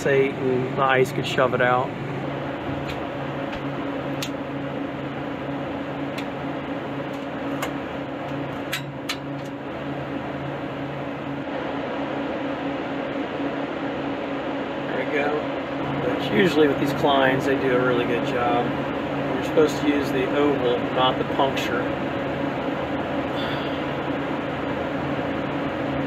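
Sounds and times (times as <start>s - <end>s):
refrigeration equipment humming: 0.0s - 26.0s.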